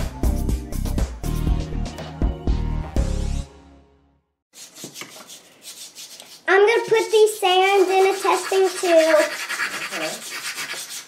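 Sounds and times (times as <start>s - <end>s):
child talking: 6.5s - 10.2s.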